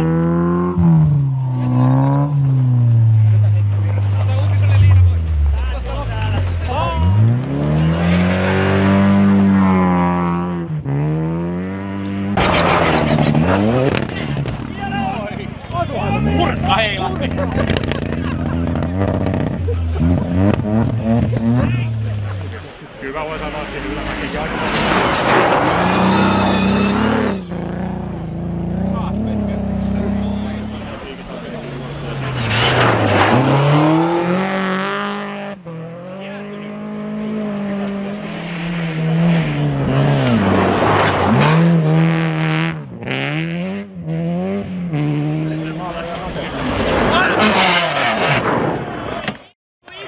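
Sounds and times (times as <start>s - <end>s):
rally car engines revving: 0.0s - 49.5s.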